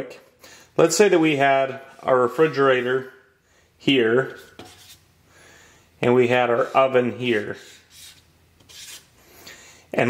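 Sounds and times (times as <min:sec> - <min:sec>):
marker rubbing on drawing board: 0:04.3 - 0:05.1, 0:06.5 - 0:09.1.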